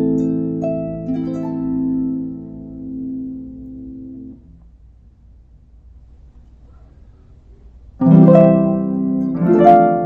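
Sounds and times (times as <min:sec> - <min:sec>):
harp chord plucked: 0:00.0 - 0:04.5, 0:08.0 - 0:10.0
faint low hum: 0:00.0 - 0:10.0.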